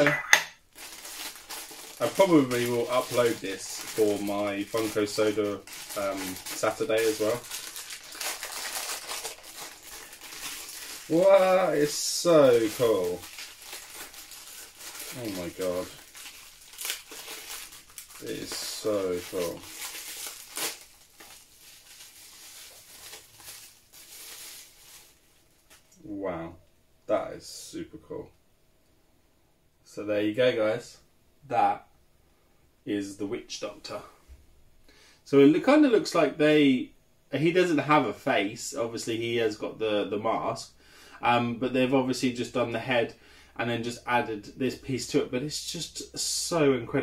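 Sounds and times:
plastic bag crinkling: 0.6 - 26.0.

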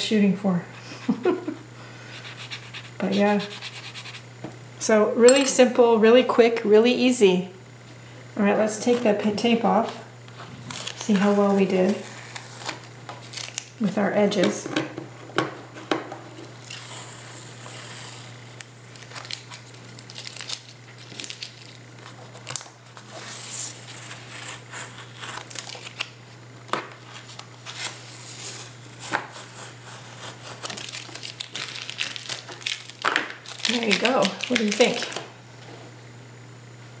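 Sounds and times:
steady low hum: 0.0 - 37.0
tape peeling off paper: 10.6 - 13.7, 16.6 - 26.2, 26.9 - 35.2.

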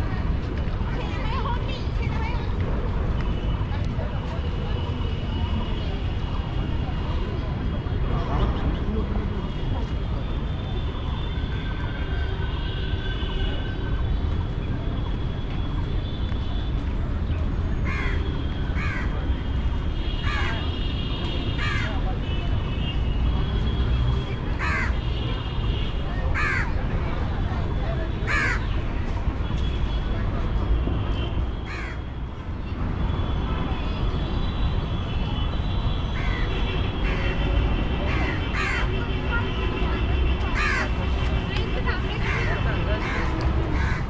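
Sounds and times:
city ambience rumble: 0.0 - 44.0
crows cawing: 17.9 - 18.2, 18.8 - 19.1, 20.2 - 20.6, 21.6 - 21.9, 24.6 - 25.0, 26.4 - 26.7, 28.3 - 28.7, 31.7 - 32.0, 36.2 - 36.4, 38.1 - 38.9, 40.6 - 40.9, 42.2 - 44.0.

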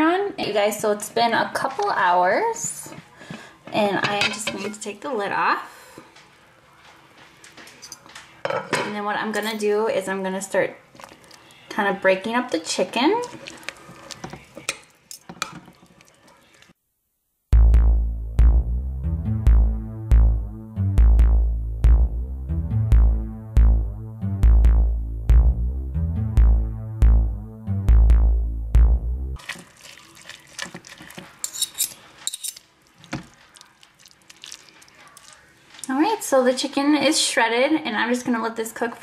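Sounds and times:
background music: 17.6 - 29.4
forks scraping ceramic crock: 29.6 - 32.6.

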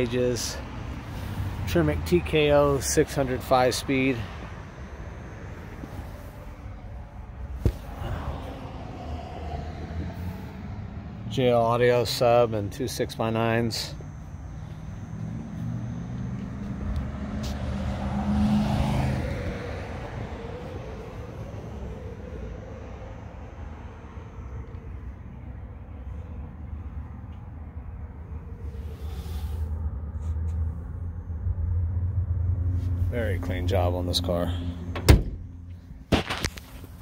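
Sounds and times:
vehicle passing by: 0.0 - 27.0, 27.8 - 35.8
road traffic rumble: 0.0 - 37.0.

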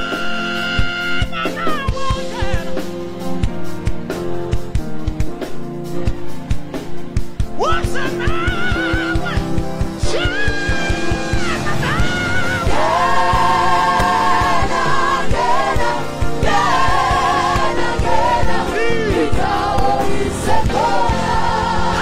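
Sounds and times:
band with drums and bass: 0.0 - 22.0
voices singing in harmony: 7.8 - 22.0.

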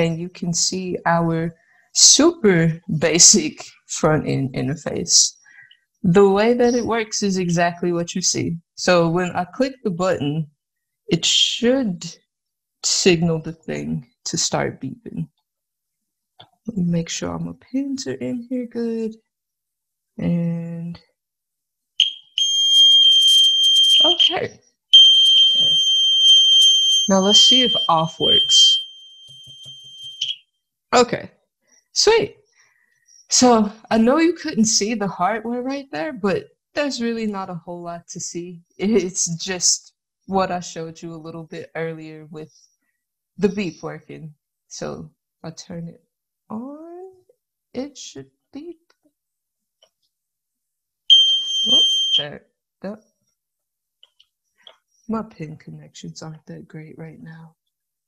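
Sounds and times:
electronic buzzer beeping: 22.0 - 24.4, 25.0 - 30.4, 51.1 - 52.2.

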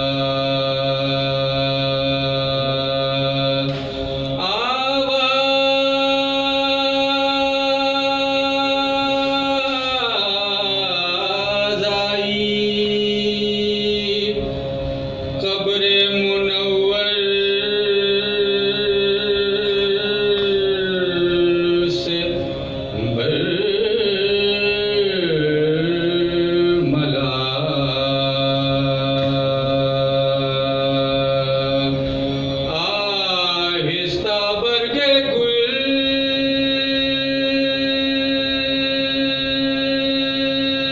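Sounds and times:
man chanting a lament: 0.0 - 14.5, 15.4 - 40.9.

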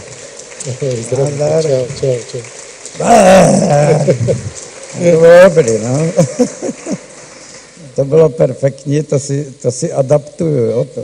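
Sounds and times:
man crying out: 3.0 - 4.5.

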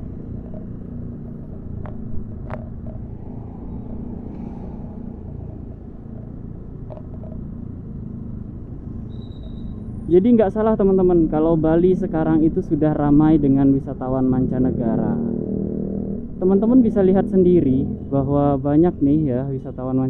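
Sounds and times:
street traffic: 0.0 - 20.0
vehicle engine and road noise: 0.0 - 20.0.

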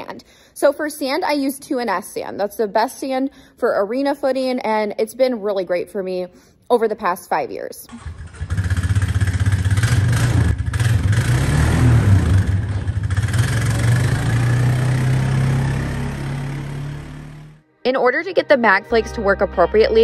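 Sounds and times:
quad bike engine running: 7.9 - 17.6.

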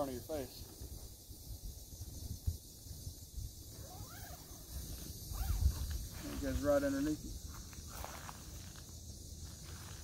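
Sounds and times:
wind buffeting microphone: 0.5 - 7.6
faint chirps: 1.3 - 8.3.

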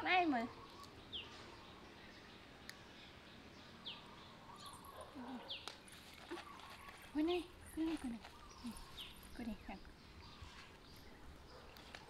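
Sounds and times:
bird chirping: 0.0 - 12.0.

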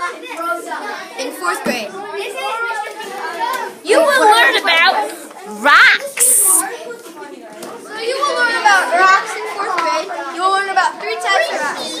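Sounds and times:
children's voices: 0.0 - 12.0.

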